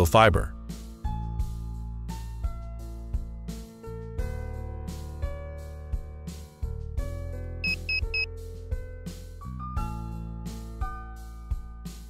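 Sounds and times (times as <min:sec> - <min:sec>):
short high electronic beeps: 0:07.7 - 0:08.3.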